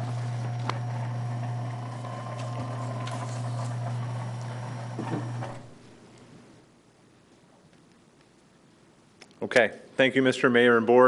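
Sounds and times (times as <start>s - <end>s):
projection screen motor humming: 0.0s - 5.9s.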